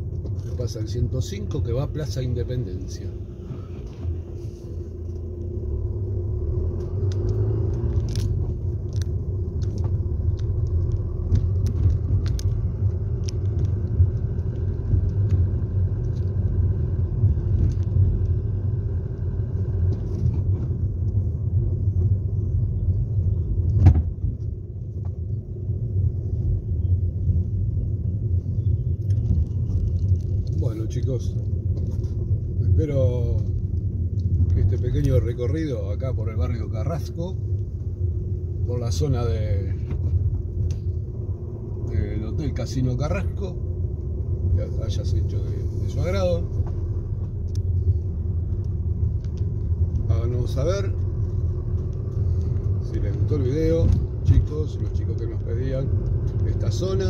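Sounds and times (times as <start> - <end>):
road and engine rumble: 0.0 - 57.0
brief thump: 23.8 - 24.3.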